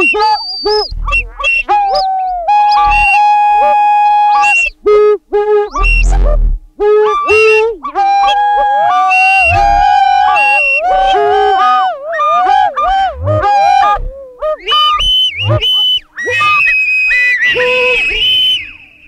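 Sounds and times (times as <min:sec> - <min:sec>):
synthesizer music: 0:00.9 - 0:01.3, 0:02.7 - 0:03.2, 0:05.8 - 0:06.6, 0:09.4 - 0:09.9, 0:12.9 - 0:14.1
low thuds: 0:00.9 - 0:01.5, 0:02.7 - 0:03.2, 0:05.8 - 0:06.7, 0:09.5 - 0:09.9, 0:12.9 - 0:14.1.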